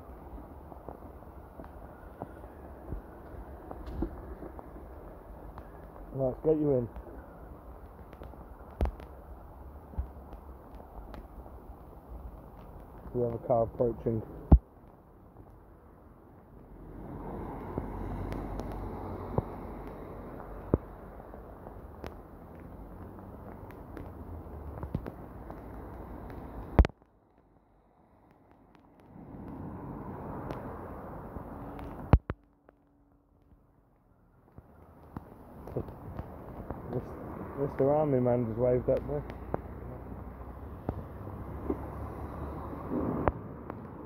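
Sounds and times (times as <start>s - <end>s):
sharp clicks and knocks: 21.6s - 27.1s.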